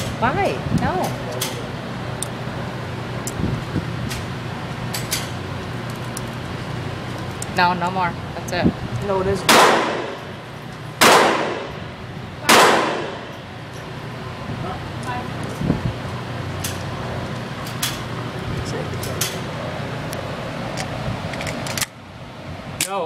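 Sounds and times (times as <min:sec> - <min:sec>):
gunshots echoing indoors: 0:09.5 - 0:10.3, 0:11.0 - 0:11.8, 0:12.5 - 0:13.4.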